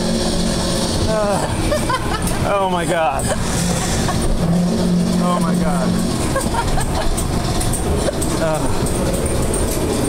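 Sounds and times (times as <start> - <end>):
ride car rumbling along track: 0.0 - 10.0
light rattles and clicks: 5.4 - 10.0.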